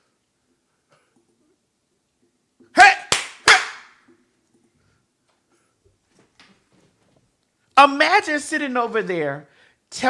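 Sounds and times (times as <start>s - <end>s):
hand claps: 3.0s - 4.0s.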